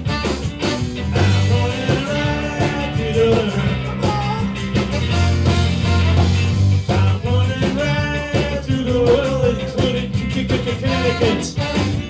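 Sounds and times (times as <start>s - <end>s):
ska band playing live: 0.0s - 12.0s
person singing: 1.1s - 5.0s, 6.9s - 11.9s.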